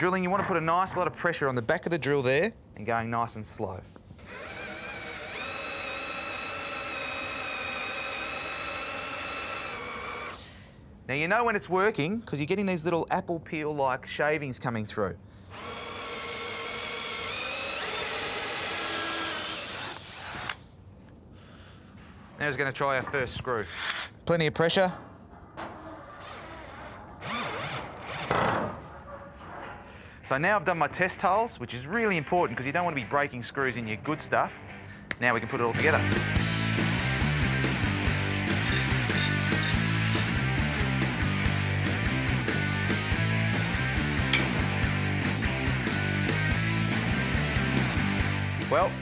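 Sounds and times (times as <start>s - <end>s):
cordless drill boring into metal: 4.3s - 10.4s, 15.6s - 20.6s, 38.3s - 40.4s.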